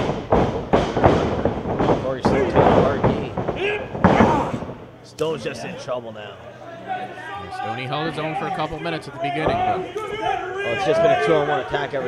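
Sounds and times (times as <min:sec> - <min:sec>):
heavy thuds on wrestling ring: 0:00.0 - 0:04.9.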